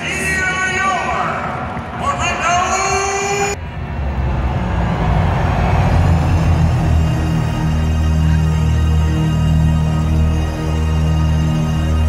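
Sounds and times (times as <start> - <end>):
person's voice: 0.0 - 3.6
deep bass rumble music: 3.6 - 12.0.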